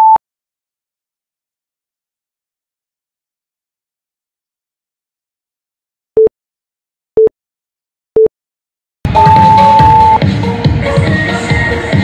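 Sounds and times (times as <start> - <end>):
countdown timer beeps: 9.1 - 10.2
electronic dance music: 9.1 - 12.0.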